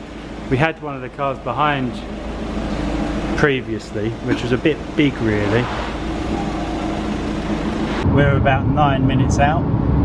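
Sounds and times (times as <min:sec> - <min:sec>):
car engine idling: 0:00.0 - 0:08.0.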